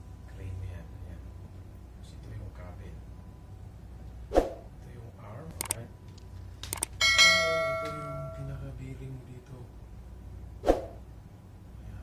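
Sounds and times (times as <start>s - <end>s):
quick clicks: 5.6s - 5.8s, 6.6s - 7.0s
bright bell ding: 7.0s - 8.6s.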